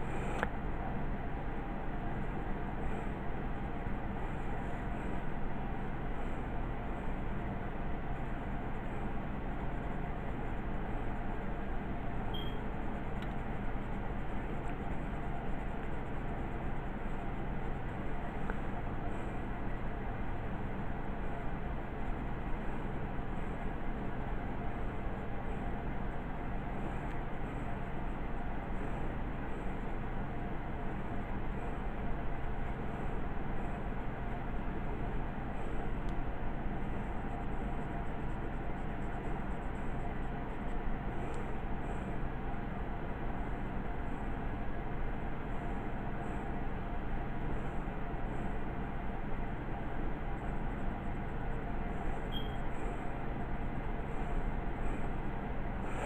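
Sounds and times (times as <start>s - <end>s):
background hiss and hum: 0.0s - 56.0s
pencil scratching on paper: 12.6s - 18.6s.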